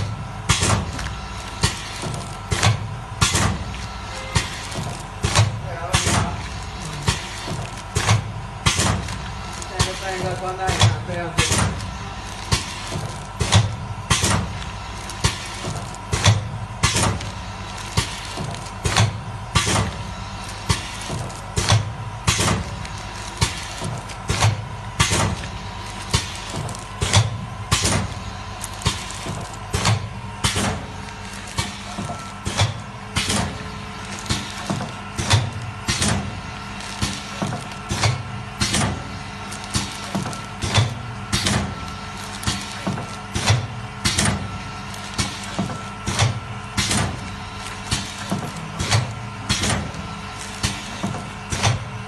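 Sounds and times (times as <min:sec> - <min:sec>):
machine hum: 0:00.0 - 0:52.0
loud machine clacks: 0:01.6 - 0:51.8.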